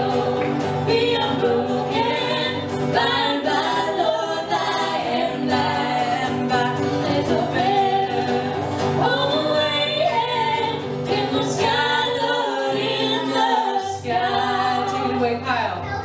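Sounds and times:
woman singing harmony: 0.0s - 15.6s
woman singing lead: 0.0s - 15.7s
electric guitar: 0.0s - 16.0s
strummed acoustic guitar: 0.0s - 16.0s.

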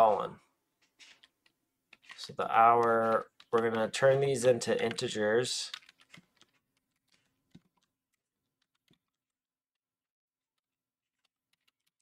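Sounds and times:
faint keyboard keystrokes: 0.0s - 9.4s.

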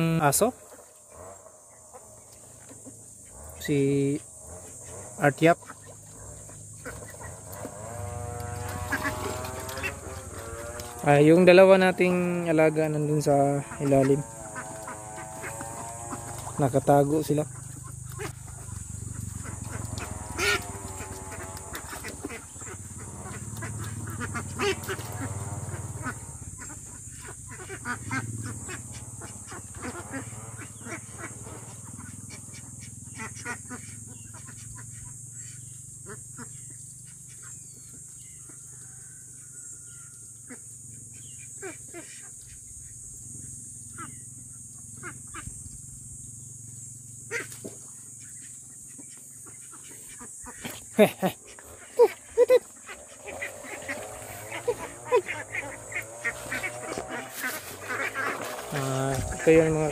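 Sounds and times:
ducklings calling: 0.0s - 46.0s, 47.1s - 59.9s.

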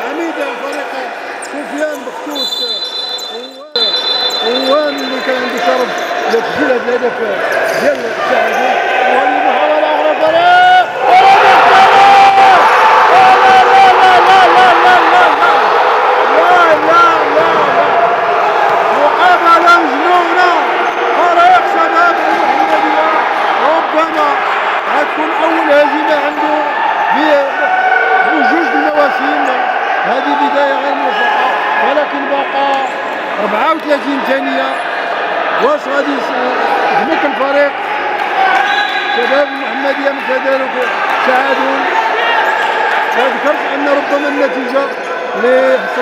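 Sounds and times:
shoe squeaks: 0.7s - 6.5s
loud raised voices: 3.8s - 46.0s.

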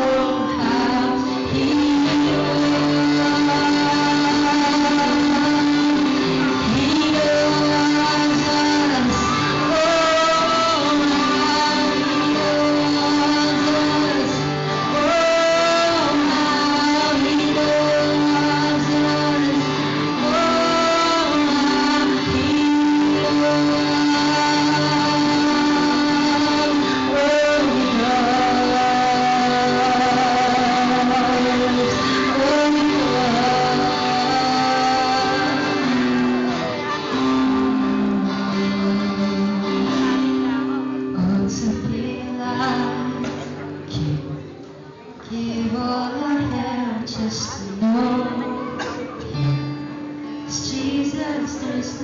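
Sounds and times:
person singing a long note: 0.0s - 43.9s
acoustic guitar: 0.0s - 52.0s.

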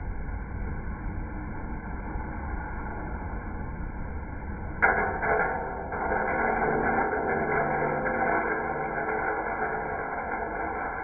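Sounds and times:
coffee roaster humming: 4.8s - 11.0s.

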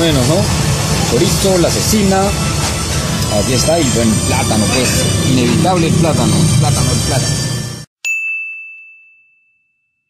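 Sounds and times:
bell-like chime ding: 8.0s - 10.0s.

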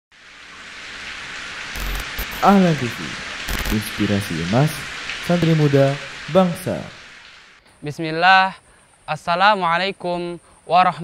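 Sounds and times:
heavy rain: 0.1s - 7.6s.

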